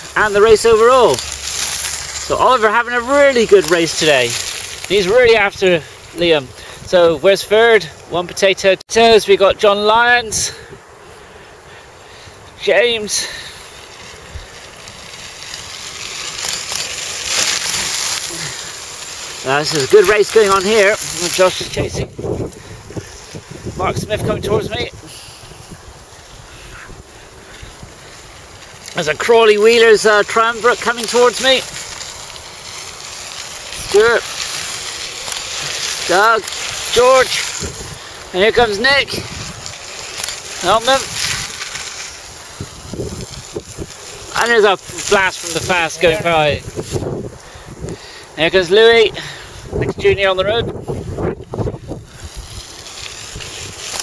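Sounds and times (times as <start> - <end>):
bicycle tyres crunching on gravel: 0.0 - 54.0
wind on microphone: 21.4 - 28.0, 36.7 - 39.8, 42.5 - 44.0, 46.0 - 48.1, 49.5 - 54.0.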